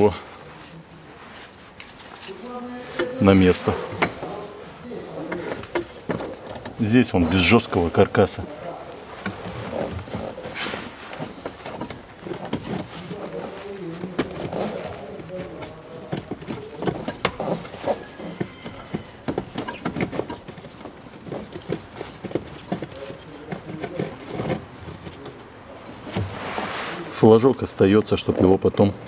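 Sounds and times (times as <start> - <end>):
filter scraping against plastic: 1.5 - 27.2.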